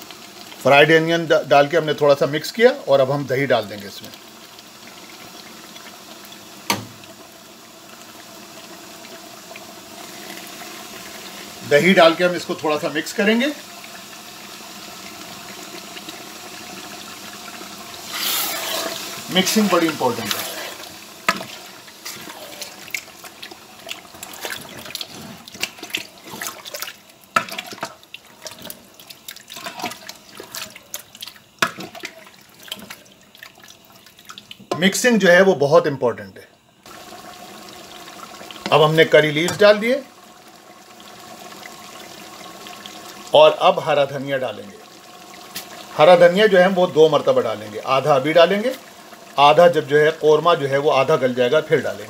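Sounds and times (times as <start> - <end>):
pot simmering and bubbling: 0.0 - 35.5, 36.8 - 52.0
wet squelching of stirred meat: 18.0 - 34.6.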